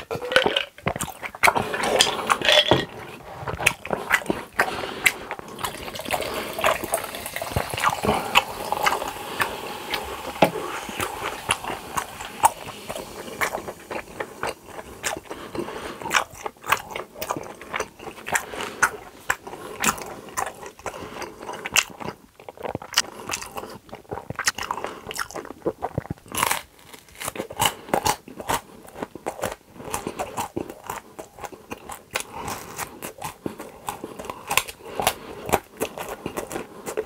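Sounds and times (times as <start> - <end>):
man chewing food: 0.0 - 37.0.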